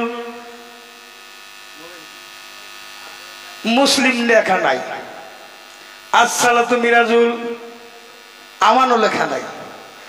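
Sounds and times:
electrical mains hum and buzz: 0:00.0 - 0:10.0.

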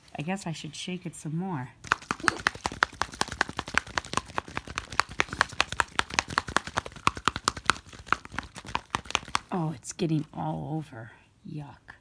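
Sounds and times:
toy rattling in plastic bottle: 0:01.8 - 0:09.5.

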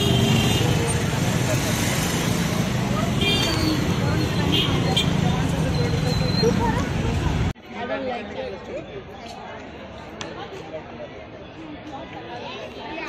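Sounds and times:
city street traffic: 0:00.0 - 0:13.0
voices of people nearby: 0:00.0 - 0:13.0.

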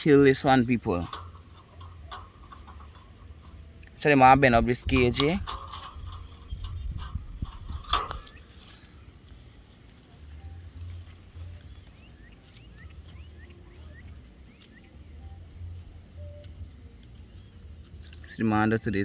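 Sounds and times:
sharp metallic clatter: 0:00.0 - 0:08.7
metallic clicks of wire cage: 0:00.0 - 0:09.4
low rumbling on microphone: 0:01.0 - 0:09.8.

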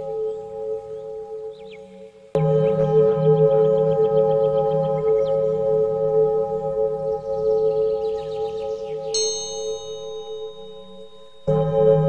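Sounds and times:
meditation drone: 0:00.0 - 0:12.0
high bell ringing: 0:09.2 - 0:12.0.

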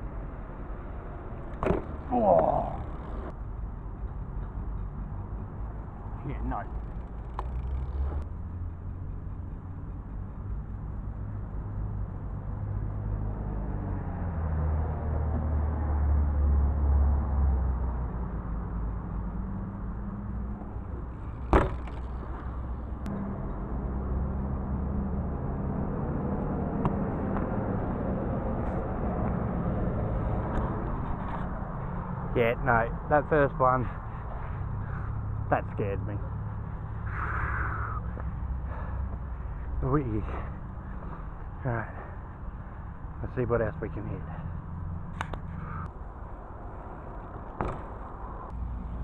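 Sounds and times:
vehicle engine rumbling: 0:00.0 - 0:49.0.

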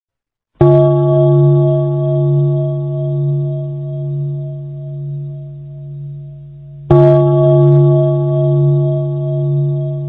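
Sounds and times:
deep bell ringing: 0:00.6 - 0:10.0.

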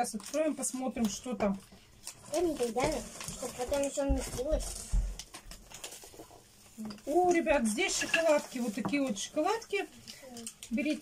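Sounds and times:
plastic wrappers crinkling: 0:00.0 - 0:11.0
foil snack bag crackling: 0:02.0 - 0:06.2.

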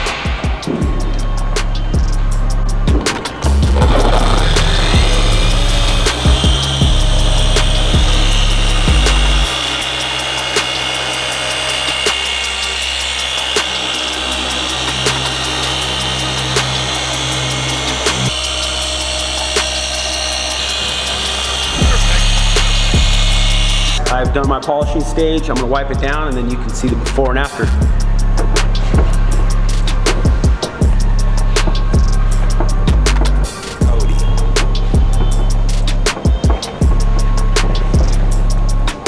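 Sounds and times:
music with steady beat: 0:00.0 - 0:39.0
polisher whining: 0:03.2 - 0:24.1.

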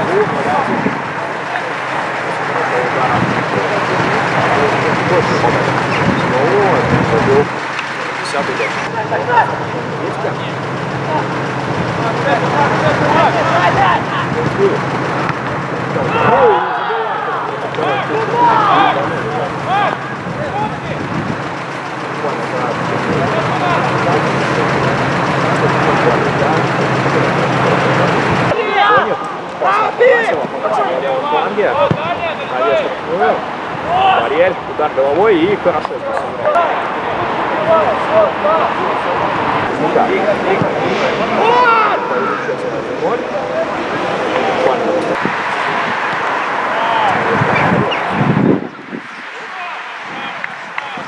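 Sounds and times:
steady low hum: 0:00.0 - 0:28.6
players and spectators shouting: 0:00.0 - 0:51.0.

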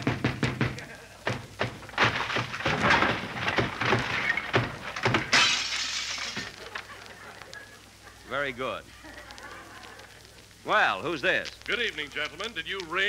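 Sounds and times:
heavy thuds on a door: 0:00.0 - 0:05.3
loud shattering crash: 0:01.8 - 0:06.9.

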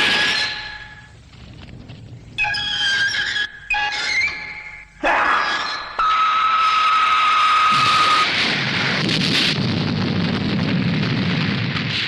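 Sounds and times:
long explosion rumble: 0:07.7 - 0:12.0.

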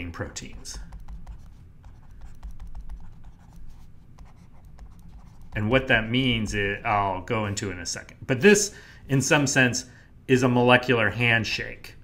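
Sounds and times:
stylus clicking on tablet: 0:00.4 - 0:03.6.

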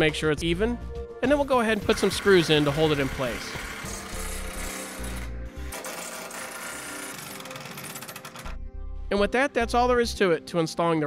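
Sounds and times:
background music: 0:00.0 - 0:11.0
cordless drill driving screws: 0:01.8 - 0:08.5.

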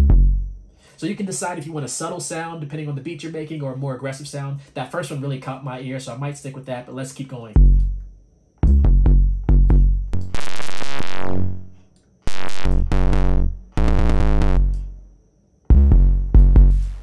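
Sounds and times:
distorted bass line: 0:00.0 - 0:00.6, 0:07.6 - 0:15.1, 0:15.7 - 0:17.0.

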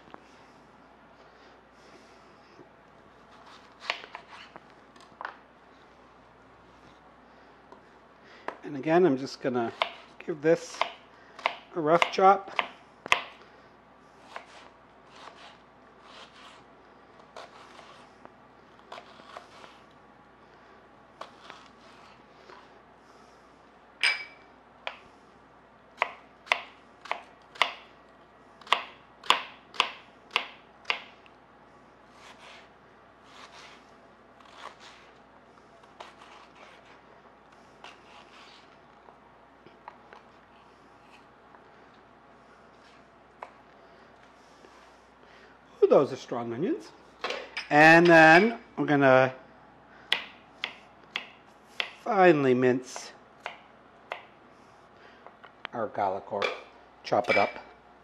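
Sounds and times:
knife chopping on cutting board: 0:09.7 - 0:10.1, 0:10.7 - 0:13.4, 0:28.6 - 0:31.1, 0:50.1 - 0:52.0.

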